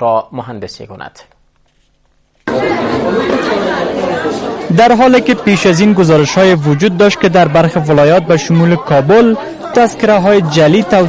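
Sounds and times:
crowd chatter: 2.4 - 11.0.

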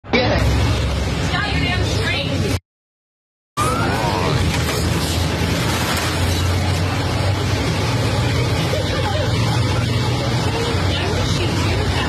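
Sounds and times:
low traffic rumble: 0.0 - 2.6, 3.6 - 12.0.

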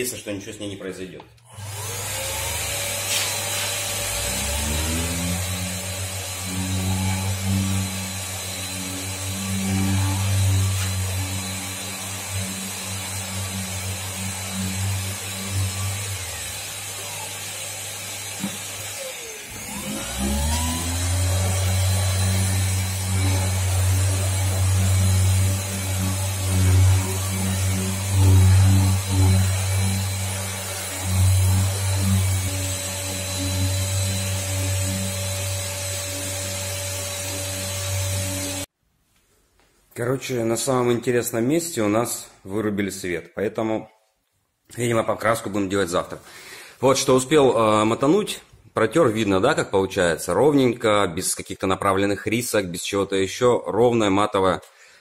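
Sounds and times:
orbital sander motor hum: 1.5 - 38.7
sanding pad rubbing on paint: 2.8 - 5.8, 6.4 - 16.8, 19.6 - 38.7.

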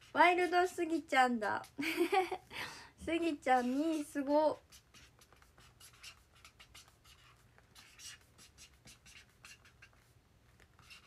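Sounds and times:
faint scratching: 0.0 - 2.4, 3.0 - 11.0.

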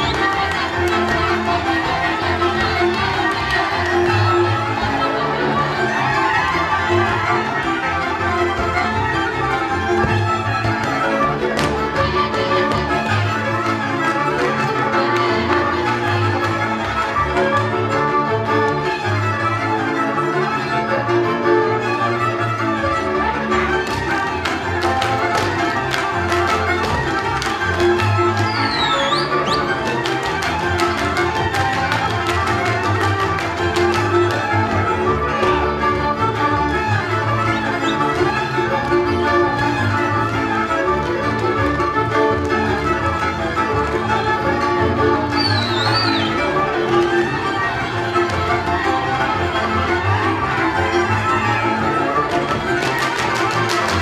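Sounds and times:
bowed string accompaniment: 0.0 - 54.0
fiddle melody: 0.0 - 54.0.

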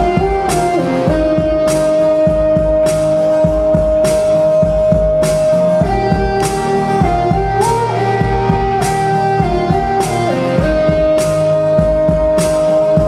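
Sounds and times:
band playing folk-pop song: 0.0 - 13.0
strummed acoustic guitar: 0.0 - 13.0.

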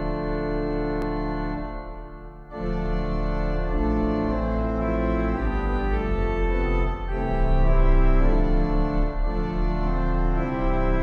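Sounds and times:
pipe organ playing chords: 0.0 - 11.0.

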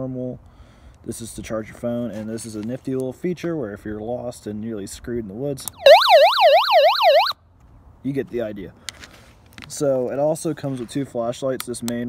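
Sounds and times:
emergency radio siren wailing: 5.8 - 7.4.

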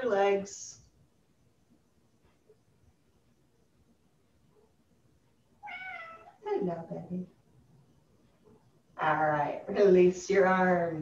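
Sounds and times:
cat meowing: 5.6 - 6.4.

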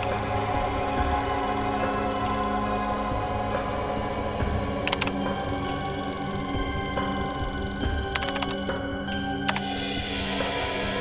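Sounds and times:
tense droning score: 0.0 - 11.0.

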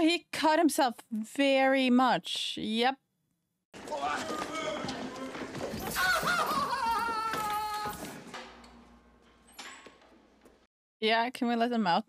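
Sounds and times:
scuffle: 3.8 - 8.5
man screaming: 5.9 - 8.1.

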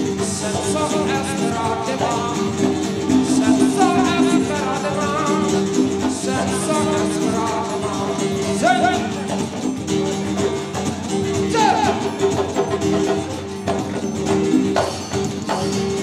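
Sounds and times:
person singing melody: 0.0 - 9.7
guitar: 0.0 - 16.0
hand percussion with shaker: 0.0 - 16.0.

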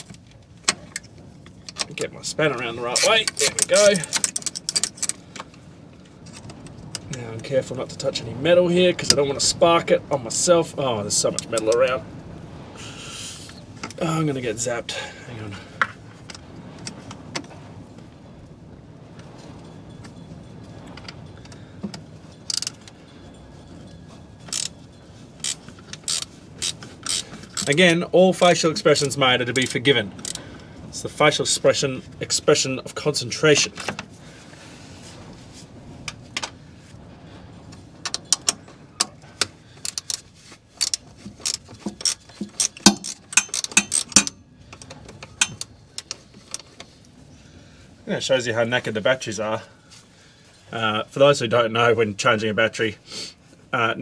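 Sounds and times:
spanner clicking on metal: 22.5 - 22.8, 24.5 - 24.7, 25.4 - 27.8, 40.8 - 46.7.

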